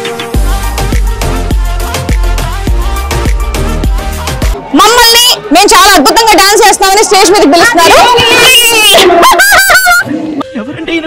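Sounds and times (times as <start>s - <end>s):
woman shrieking excitedly: 7.8s - 10.1s.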